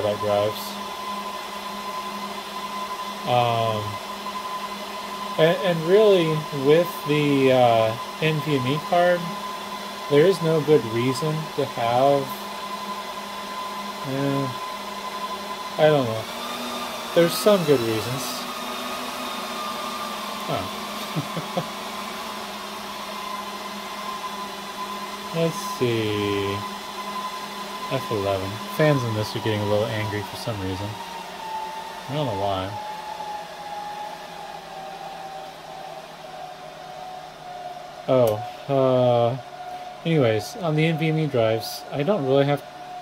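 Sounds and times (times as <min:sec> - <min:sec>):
server cooling fans whirring: 0:00.0 - 0:43.0.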